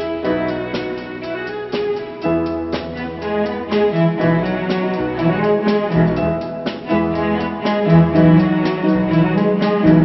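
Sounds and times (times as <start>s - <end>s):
orchestral instrumental music: 0.0s - 10.0s.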